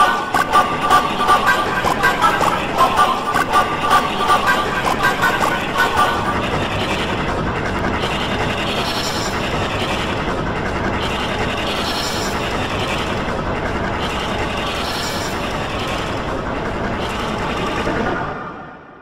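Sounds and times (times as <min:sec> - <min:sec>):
distorted layered soundtrack clatter: 0:00.0 - 0:19.0.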